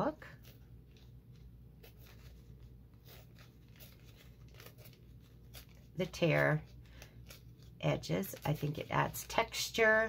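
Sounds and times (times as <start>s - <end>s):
paper filter tearing: 1.8s - 9.7s.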